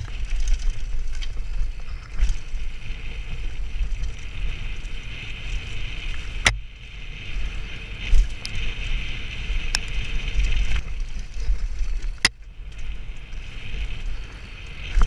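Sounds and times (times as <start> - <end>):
tyre and bike rattle: 0.0 - 15.0
wind buffeting microphone: 0.0 - 15.0.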